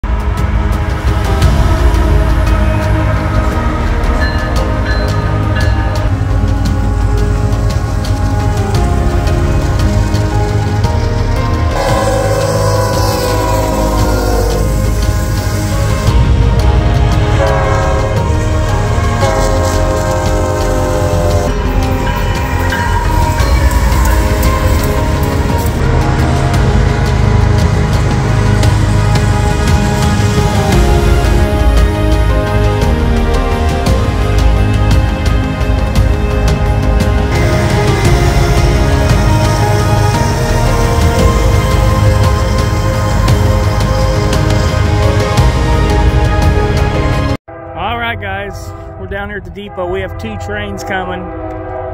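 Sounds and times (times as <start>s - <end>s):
freight trains passing: 0.0s - 51.9s
music: 0.0s - 51.9s
locomotive air horn: 11.4s - 16.0s, 17.2s - 35.6s, 47.2s - 51.9s.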